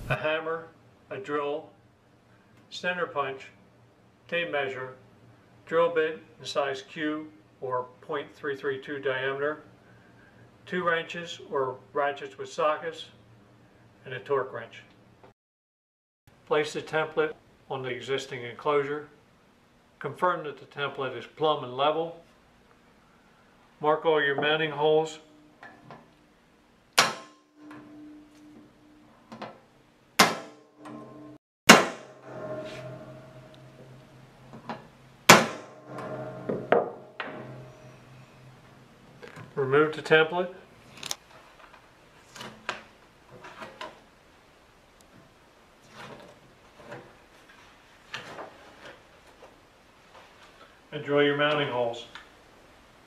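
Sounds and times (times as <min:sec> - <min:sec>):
hammer striking punch on sheet metal: 0:27.0 - 0:27.9, 0:30.2 - 0:38.4
metal box ringing: 0:30.4 - 0:38.7.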